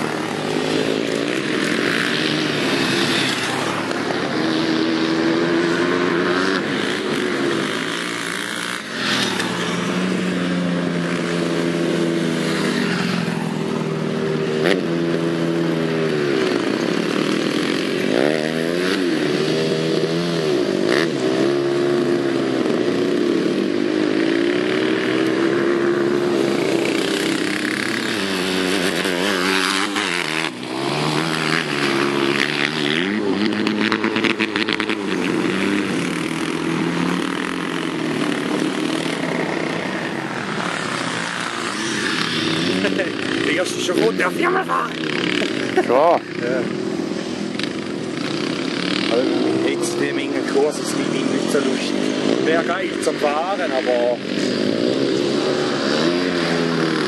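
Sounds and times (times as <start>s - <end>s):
go-kart engine revving: 0.0s - 57.0s.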